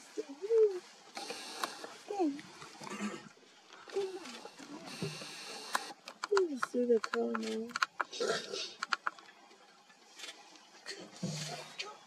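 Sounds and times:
faint high hiss: 0.0s - 6.9s.

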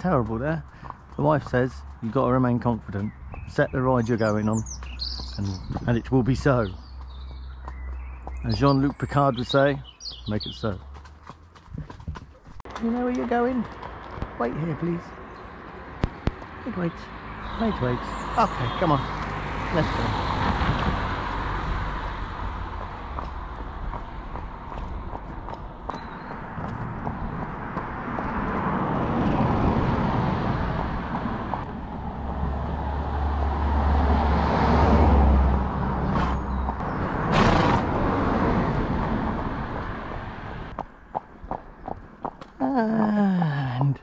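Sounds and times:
cars passing by: 0.0s - 44.0s.

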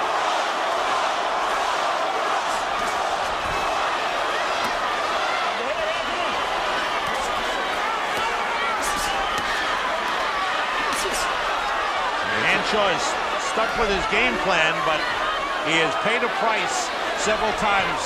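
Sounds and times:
crowd chanting and cheering: 0.0s - 18.0s.

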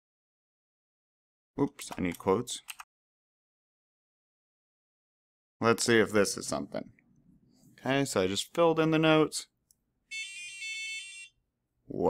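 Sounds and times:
piezo buzzer beep notes: 10.1s - 11.4s.

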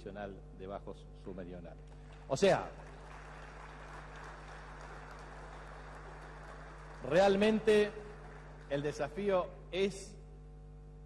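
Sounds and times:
faint low electrical hum: 0.0s - 11.0s.

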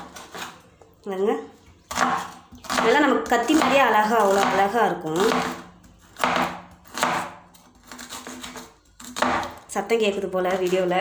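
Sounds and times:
knife slicing onion on board: 1.9s - 9.6s.

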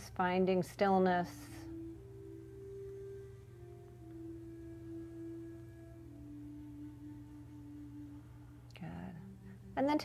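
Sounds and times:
soft ambient music: 0.0s - 10.0s
steady low hum: 0.0s - 10.0s.

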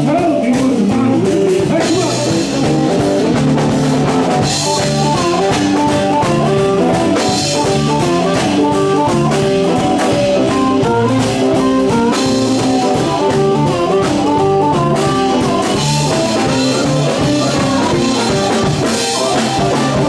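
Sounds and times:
blues band playing: 0.0s - 20.0s.

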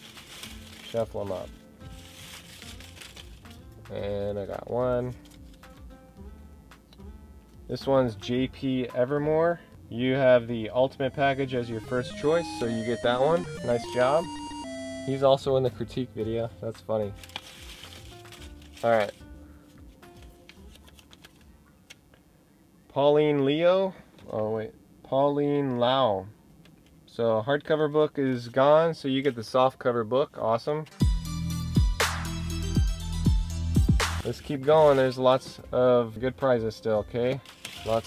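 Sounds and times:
paper crinkling: 0.0s - 3.6s, 17.1s - 21.5s, 37.4s - 38.0s
paper slips rustling: 0.0s - 3.6s, 11.1s - 15.3s, 17.0s - 19.3s, 34.2s - 35.2s, 37.4s - 38.0s
faint background music: 0.0s - 26.3s, 26.9s - 38.0s.

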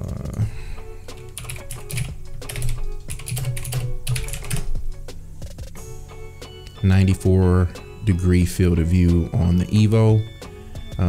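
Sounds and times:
background music with held notes: 0.0s - 11.0s
typing on computer keyboard: 1.1s - 4.7s.

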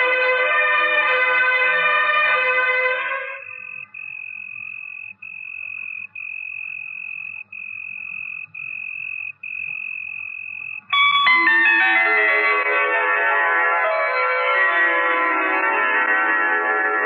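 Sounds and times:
steady high-pitched tone: 3.4s - 12.4s.

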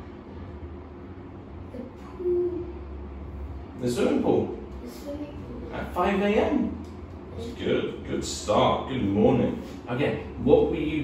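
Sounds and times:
child humming: 1.7s - 3.0s.

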